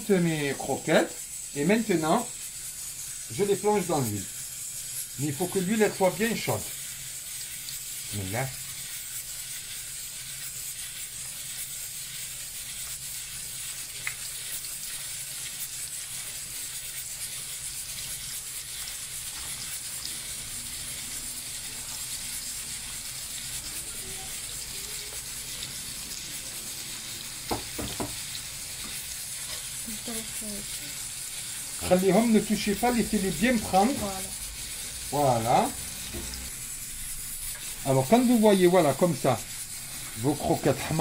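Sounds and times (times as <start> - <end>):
food sizzling in hot oil: 0.0 - 41.0.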